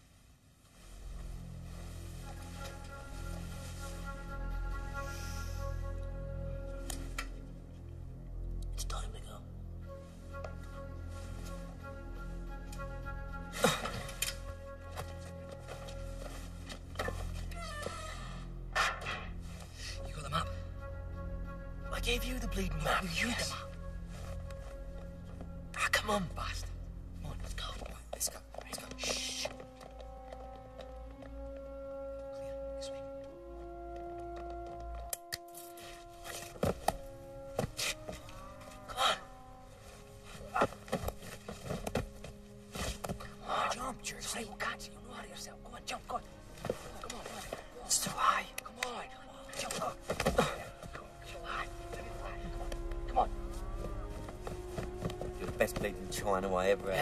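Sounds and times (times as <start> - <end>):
film background music: 0.0 - 57.0
wordless voice sounds: 19.8 - 24.9, 25.5 - 29.6, 43.3 - 54.2, 55.3 - 57.0.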